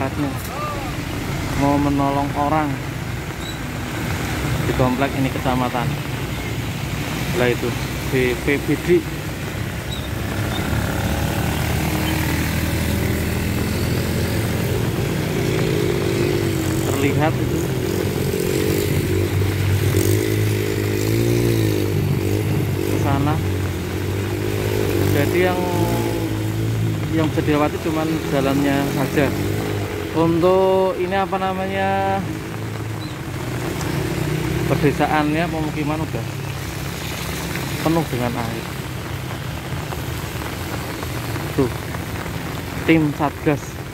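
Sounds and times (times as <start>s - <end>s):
motor traffic drone: 0.0s - 43.9s
motorcycle engines: 0.0s - 43.9s
tyres hissing on wet road: 0.1s - 43.9s.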